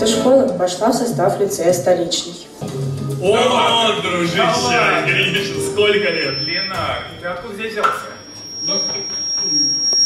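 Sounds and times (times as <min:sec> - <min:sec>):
men talking: 0:03.1 - 0:09.2
microphone feedback whistle: 0:05.3 - 0:10.0.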